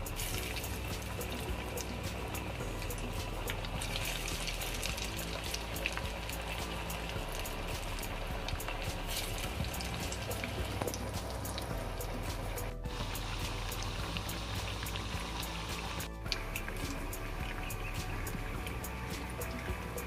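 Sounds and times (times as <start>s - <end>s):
batter deep-frying in hot oil: 0.0s - 20.0s.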